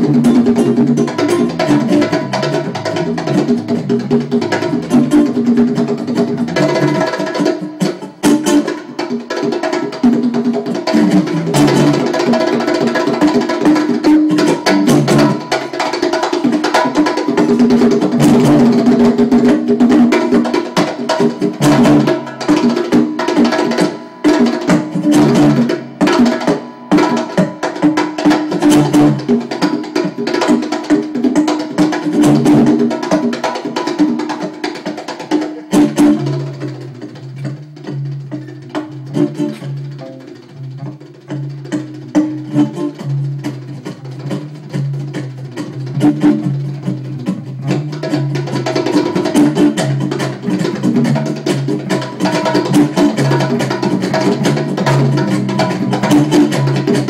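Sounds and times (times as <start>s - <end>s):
acoustic guitar: 0.0s - 57.0s
electric guitar: 0.0s - 57.0s
hand drum: 0.0s - 57.0s.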